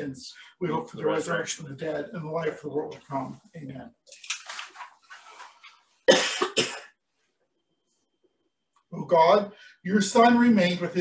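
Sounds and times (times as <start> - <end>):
soft rustling: 3.0 - 6.0
man coughing: 6.1 - 7.0.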